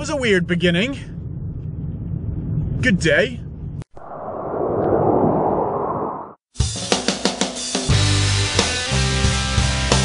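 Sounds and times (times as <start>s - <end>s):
rumbling rush of noise: 0.7s - 6.4s.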